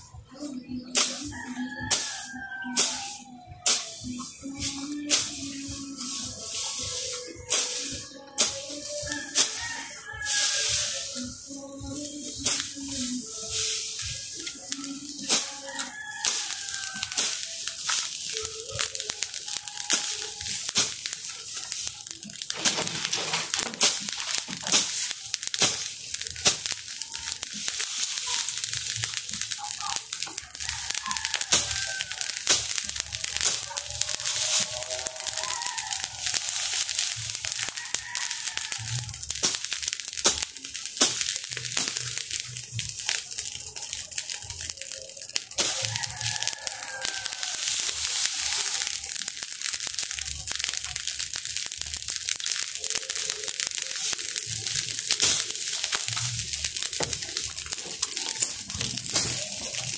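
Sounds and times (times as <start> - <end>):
dry grass fire crackling: 0.0 - 59.9.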